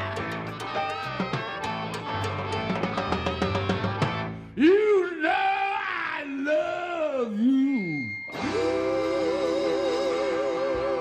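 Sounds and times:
blues-rock band playing: 0.0 - 4.5, 8.3 - 11.0
person singing with vibrato: 4.6 - 11.0.

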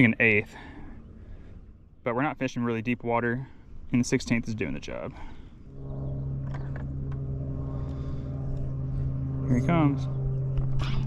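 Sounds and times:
electric motor humming: 5.3 - 11.0.

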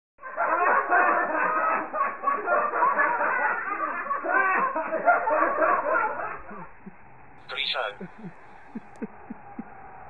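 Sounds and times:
laughter: 0.2 - 10.0
voices chattering and jeering: 7.4 - 10.0.

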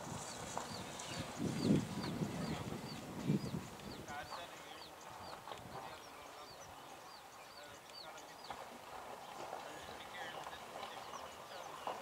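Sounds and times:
faint distant voices: 0.3 - 12.0.

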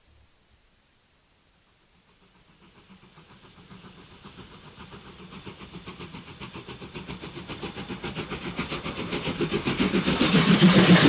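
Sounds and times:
steam locomotive chuffing: 1.9 - 11.0.

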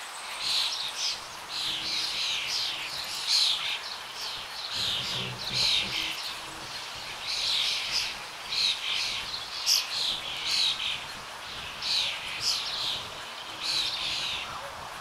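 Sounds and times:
birds chirping: 0.0 - 15.0.

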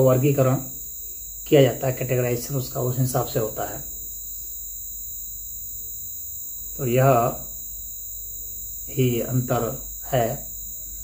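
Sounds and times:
crickets trilling: 0.0 - 11.0
faint low hum: 0.0 - 11.0
man's voice: 6.8 - 7.4, 8.9 - 10.4.

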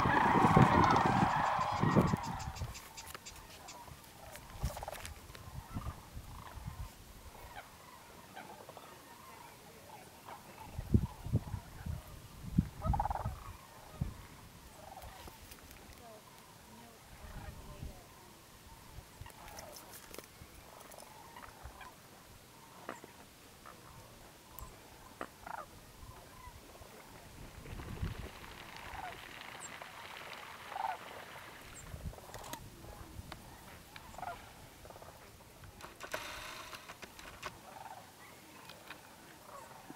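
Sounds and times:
cranes calling: 0.0 - 6.8, 28.2 - 32.6, 33.4 - 39.9.

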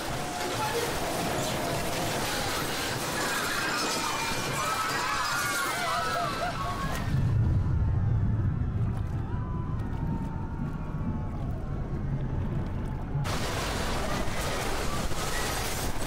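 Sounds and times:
muffled underwater rumble: 7.1 - 13.6.

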